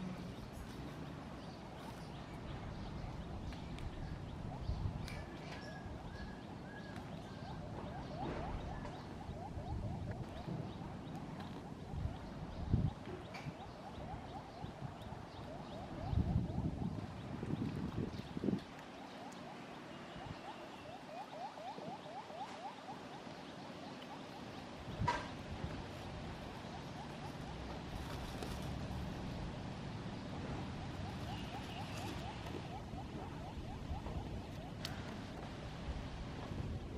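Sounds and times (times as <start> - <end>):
small animal chirping: 1.8 - 25.1, 26.4 - 28.7, 30.6 - 35.4.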